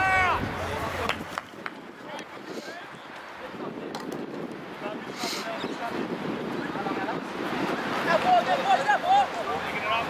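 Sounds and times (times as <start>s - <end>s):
players calling and shouting: 0.0s - 3.6s, 4.8s - 10.0s
wind on microphone: 0.0s - 10.0s.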